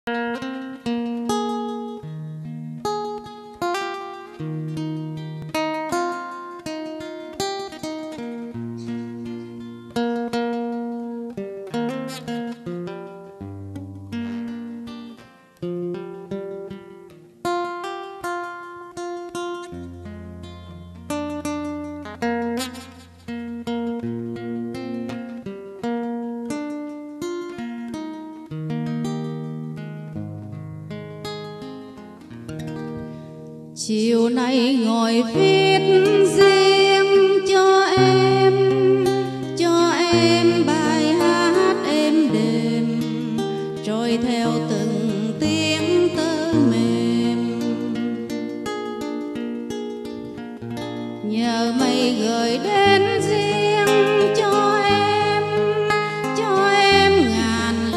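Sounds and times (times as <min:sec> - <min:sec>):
acoustic guitar plucking melody: 0:00.0 - 0:57.9
woman singing: 0:33.8 - 0:49.3, 0:51.1 - 0:57.9.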